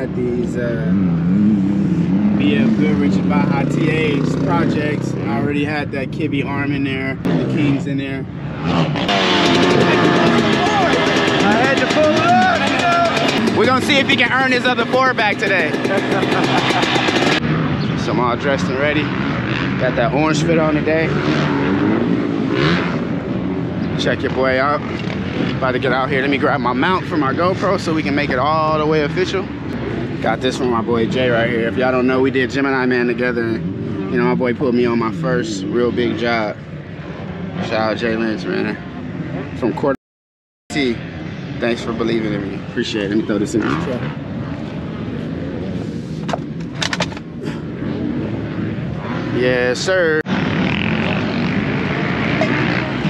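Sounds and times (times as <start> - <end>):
dirt bike engines droning: 0.0 - 40.0, 40.7 - 53.0.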